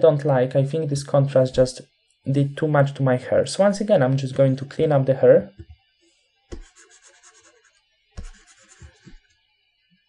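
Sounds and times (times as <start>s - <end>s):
mouse scraping across desk: 6.5s - 9.3s.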